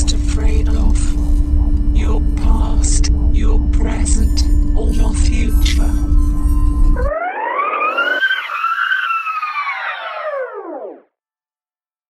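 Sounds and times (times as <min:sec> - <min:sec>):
whining sound effect: 0:00.0 - 0:11.0.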